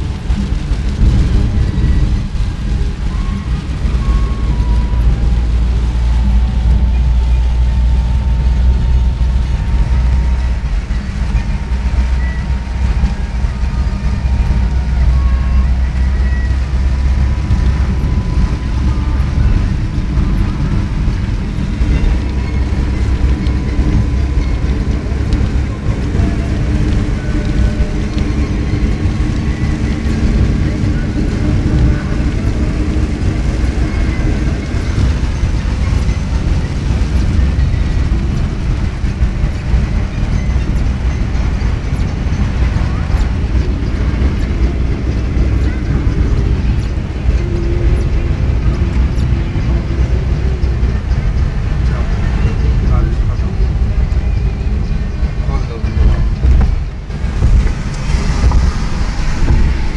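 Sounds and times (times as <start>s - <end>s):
car engine rumble: 0.0s - 59.9s
heavy rain: 0.0s - 59.9s
tyres on wet road: 0.0s - 59.9s
windscreen wipers running: 0.0s - 59.9s.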